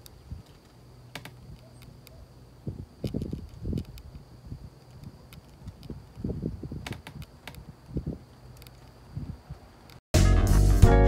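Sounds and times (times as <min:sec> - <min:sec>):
sharp clicks: 0:00.0 - 0:02.2, 0:03.0 - 0:07.7, 0:08.3 - 0:09.0.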